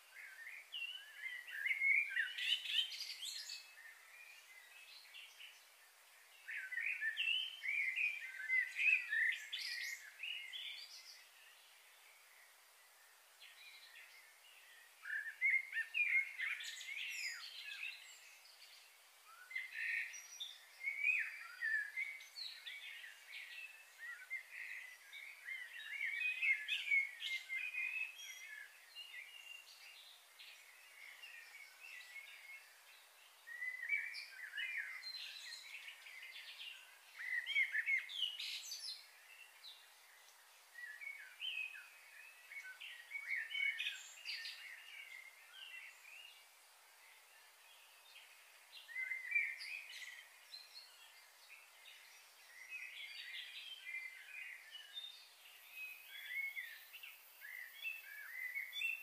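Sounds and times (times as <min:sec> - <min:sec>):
small birds chirping: 0:00.0 - 0:59.0.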